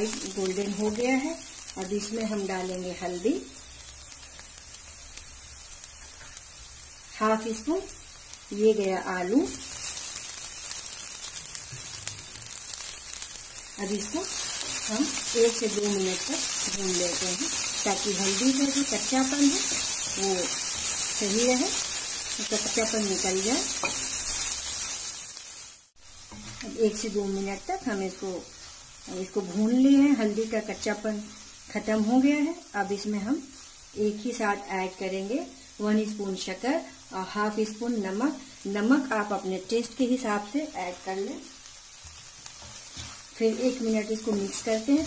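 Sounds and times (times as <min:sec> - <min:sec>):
onions sizzling in oil: 0:00.0 - 0:45.0
wooden spatula stirring: 0:42.0 - 0:45.0.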